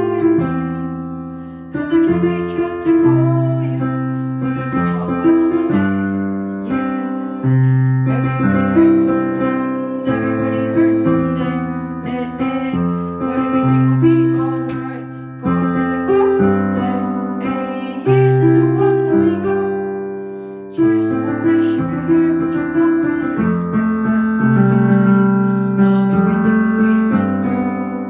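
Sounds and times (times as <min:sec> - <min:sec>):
digital piano chords: 0:00.0 - 0:28.0.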